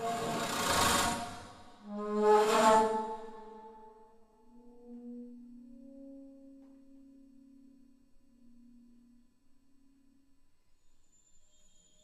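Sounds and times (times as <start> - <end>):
breathy bass flute: 0.0 - 9.3
low pitched flute note: 0.0 - 9.3.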